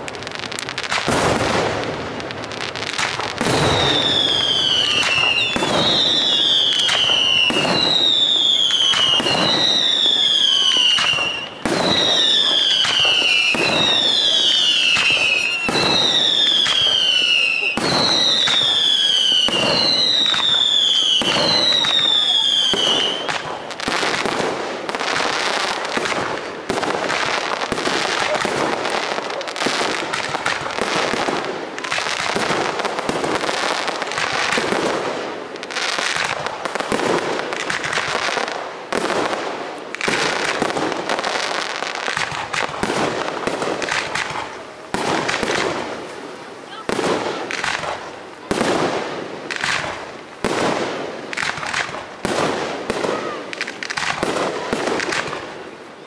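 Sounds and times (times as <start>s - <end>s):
firework bangs: 0.0s - 56.0s
firework crackling: 0.0s - 56.0s
whistling firework shells: 2.6s - 34.9s.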